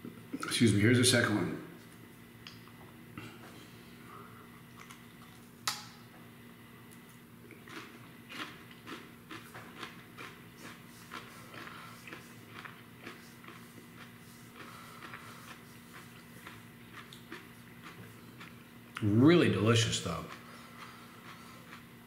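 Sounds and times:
person chewing crunchy pepper: 4.5s - 5.6s, 6.9s - 19.1s, 20.1s - 22.0s.

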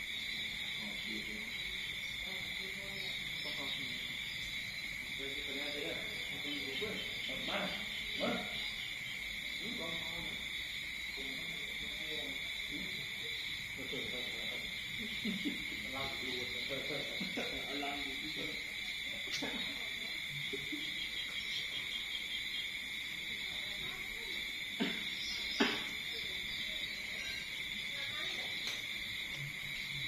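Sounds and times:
insects trilling: 0.0s - 30.0s.

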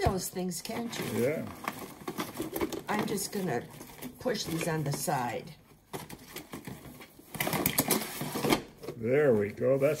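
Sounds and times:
paint tubes and palette clattering: 0.0s - 9.1s.

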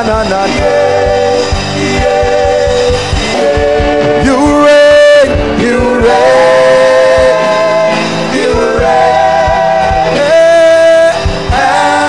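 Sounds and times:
drum hits: 0.0s - 12.0s
instrumental backing: 0.0s - 12.0s
person singing long gliding notes: 0.4s - 12.0s.

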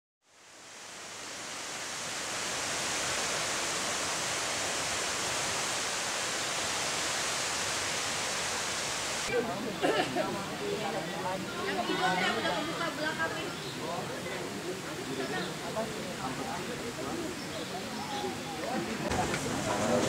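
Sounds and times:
steady rushing noise: 0.3s - 9.3s.

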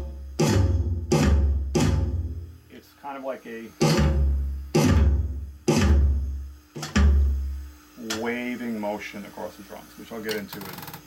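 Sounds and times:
electronic drum hits: 0.0s - 2.6s, 3.8s - 7.6s.

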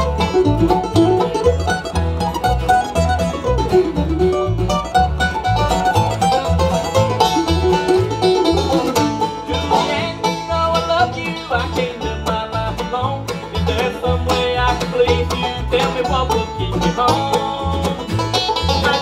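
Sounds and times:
guitar rhythm: 0.0s - 19.0s
plucked string lead: 0.0s - 19.0s
upright bass plucking: 0.0s - 19.0s.

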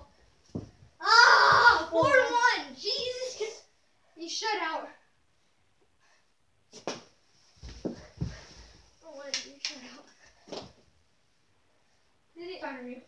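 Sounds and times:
dull thumps: 0.4s - 2.5s
kids' wordless voice sounds: 1.0s - 5.2s, 9.0s - 10.4s, 12.3s - 13.0s.

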